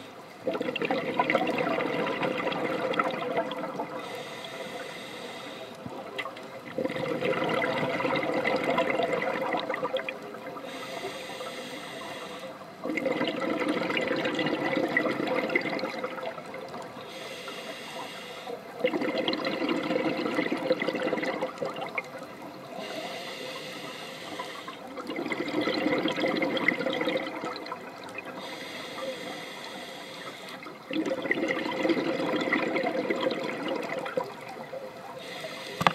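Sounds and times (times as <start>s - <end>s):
bubbling underwater exhalations: 0.4s - 4.0s, 6.7s - 10.4s, 12.8s - 16.6s, 18.8s - 22.0s, 25.0s - 27.9s, 30.9s - 34.4s
hiss of inhalation: 4.0s - 5.8s, 10.6s - 12.6s, 17.0s - 18.6s, 22.8s - 24.9s, 28.4s - 30.7s, 35.2s - 35.9s.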